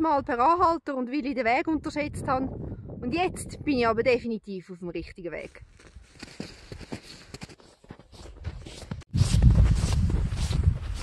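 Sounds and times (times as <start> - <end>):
footsteps in snow: 5.4 - 11.0.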